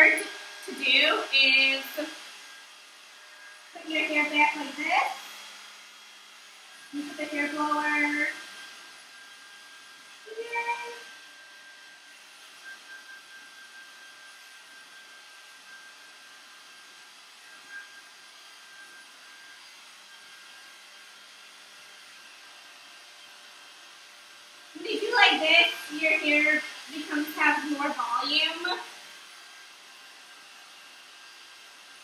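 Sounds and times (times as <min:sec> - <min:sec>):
hair blower running with whine: 0:00.0 - 0:32.0.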